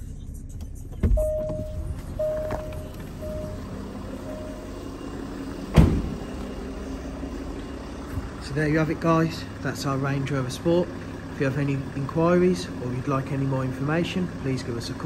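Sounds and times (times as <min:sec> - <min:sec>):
car engine idling: 0:00.0 - 0:15.0
car warning chime: 0:01.1 - 0:08.0
car door shutting thud: 0:05.6 - 0:06.5
car door opening with a knock: 0:05.7 - 0:06.2.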